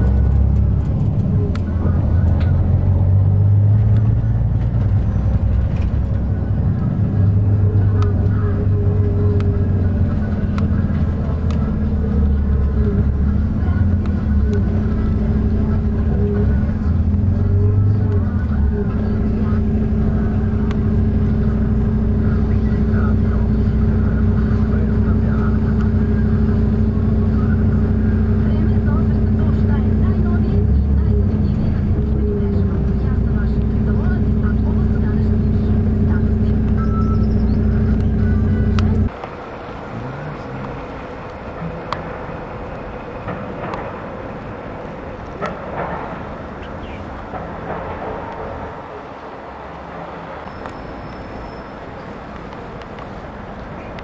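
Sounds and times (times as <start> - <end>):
vehicle engine drone from inside: 0.0 - 54.0.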